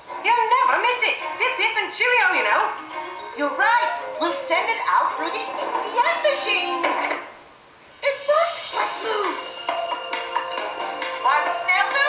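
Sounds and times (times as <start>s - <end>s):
cartoon music: 2.8s - 7.2s.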